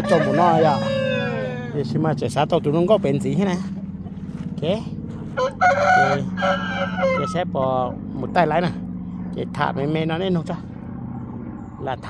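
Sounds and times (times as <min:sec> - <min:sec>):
rooster crowing: 0:00.0 - 0:01.8, 0:05.3 - 0:07.5.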